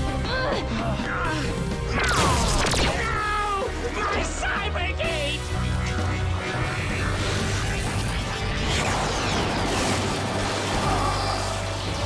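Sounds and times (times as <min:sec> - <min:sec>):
electronic sci-fi sound effects: 0:01.9 - 0:03.2, 0:05.3 - 0:12.0
warbling tones: 0:05.4 - 0:10.8.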